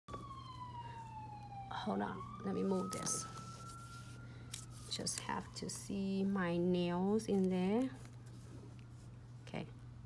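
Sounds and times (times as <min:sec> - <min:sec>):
steady low hum: 0:00.2 - 0:10.0.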